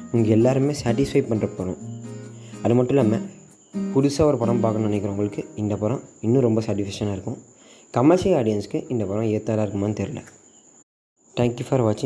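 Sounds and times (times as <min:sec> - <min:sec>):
man speaking: 0:00.1 - 0:01.8, 0:02.6 - 0:07.4, 0:11.4 - 0:12.0.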